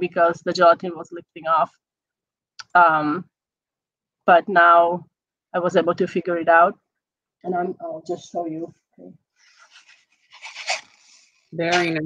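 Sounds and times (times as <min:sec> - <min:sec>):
rustling of handled objects: 0:09.4 - 0:11.6.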